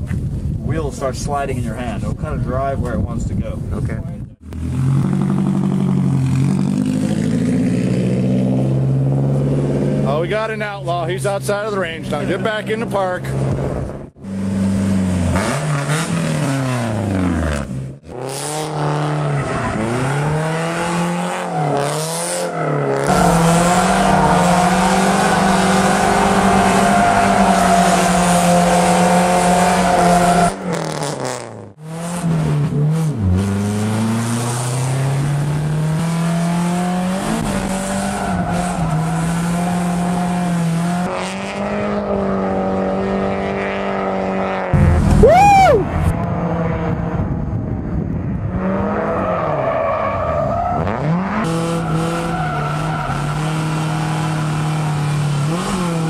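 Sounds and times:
car engine revving hard: 0:13.3 - 0:47.1, 0:50.8 - 0:56.0.

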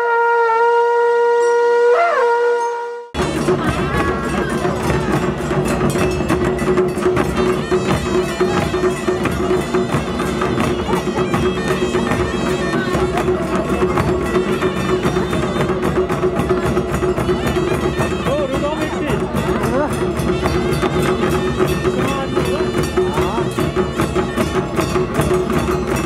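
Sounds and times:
brass horns sounding together: 0:00.0 - 0:03.2
long horn note: 0:00.0 - 0:03.2
barrel drums beaten fast: 0:03.2 - 0:26.0.

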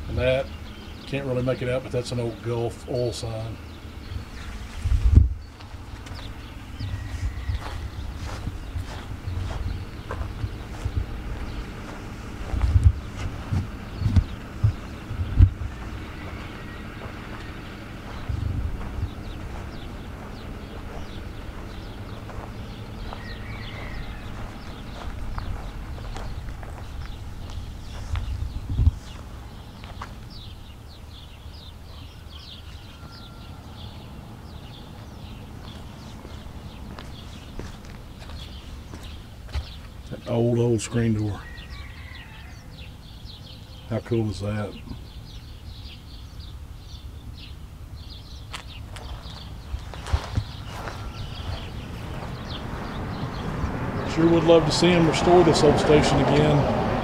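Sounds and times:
wind gusting on microphone: 0:03.6 - 0:31.7, 0:45.0 - 0:57.0
footsteps on grass and dirt: 0:04.1 - 0:31.7, 0:34.7 - 0:40.2, 0:48.0 - 0:55.1
heavy thumps: 0:12.5 - 0:16.4.

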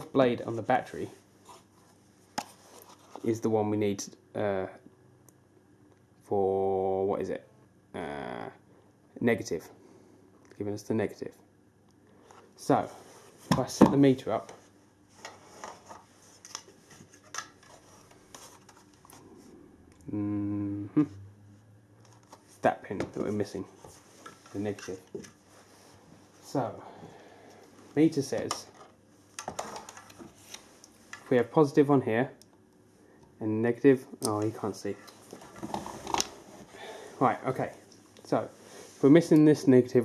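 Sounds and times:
faint rustling handling noise: 0:00.0 - 0:03.5, 0:12.0 - 0:19.6, 0:21.6 - 0:26.8, 0:27.6 - 0:31.7, 0:34.3 - 0:39.8.

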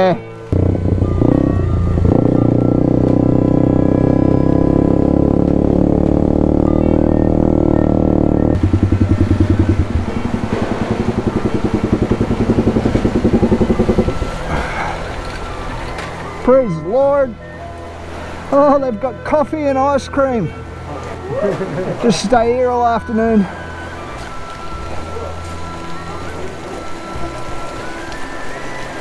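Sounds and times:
motorcycle engine running and idling: 0:00.5 - 0:15.8.

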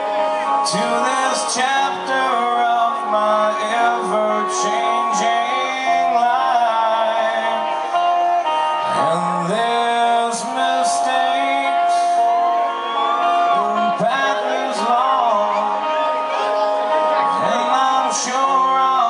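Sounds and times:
live rock band playing: 0:00.0 - 0:19.0
man singing long notes: 0:00.0 - 0:19.0.

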